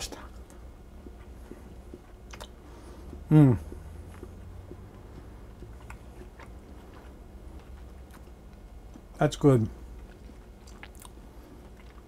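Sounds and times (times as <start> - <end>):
low steady hum: 0.0 - 12.0
chewing bread: 0.3 - 12.0.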